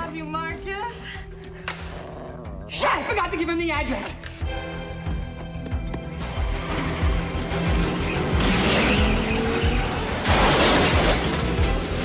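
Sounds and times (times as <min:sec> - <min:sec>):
film score with low beat: 0:00.0 - 0:08.5.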